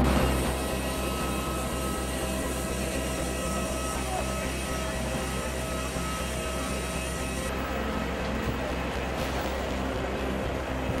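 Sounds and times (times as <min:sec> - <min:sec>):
high whine: 0:00.0 - 0:11.0
jet aircraft noise: 0:00.0 - 0:11.0.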